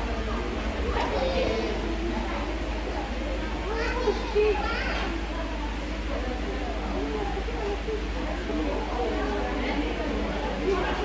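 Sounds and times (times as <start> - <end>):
children calling out excitedly: 0.0 - 6.1
low background hum: 0.0 - 11.0.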